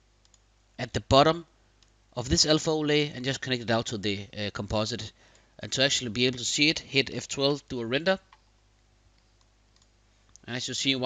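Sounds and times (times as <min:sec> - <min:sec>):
faint clicks: 0:00.2 - 0:00.5, 0:01.8 - 0:02.0, 0:09.1 - 0:10.5
person speaking: 0:00.8 - 0:08.4, 0:10.2 - 0:11.0.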